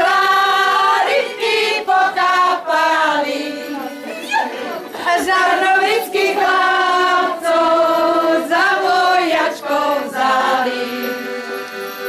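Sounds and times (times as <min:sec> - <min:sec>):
group singing: 0:00.0 - 0:11.6.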